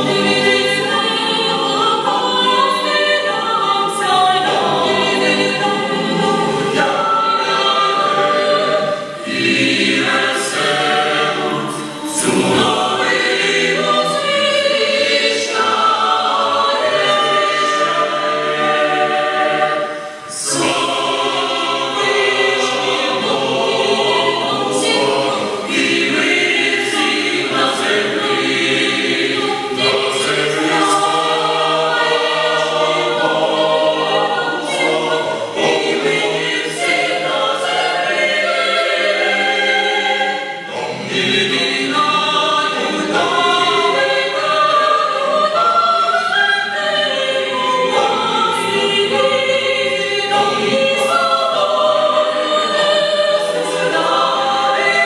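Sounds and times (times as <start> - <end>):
mixed choir singing a carol: 0.0 - 55.0.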